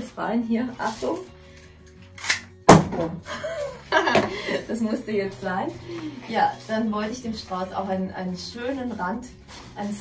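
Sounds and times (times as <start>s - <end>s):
stems cracking as cut: 2.2s - 2.5s.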